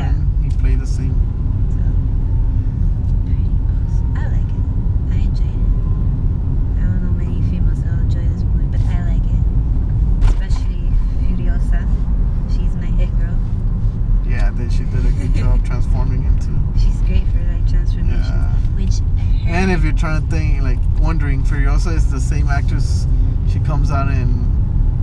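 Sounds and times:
car engine rumble: 0.0s - 25.0s
road noise: 0.0s - 25.0s.

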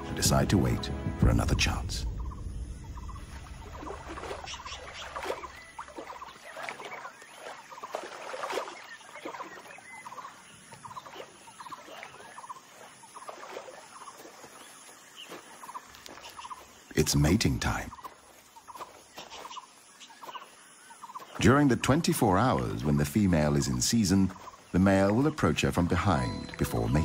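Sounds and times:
low hum: 0.0s - 5.8s.

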